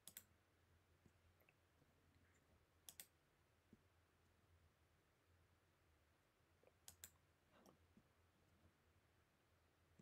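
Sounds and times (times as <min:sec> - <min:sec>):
computer mouse clicks: 0:00.0 - 0:00.3, 0:02.8 - 0:03.2, 0:06.7 - 0:07.8.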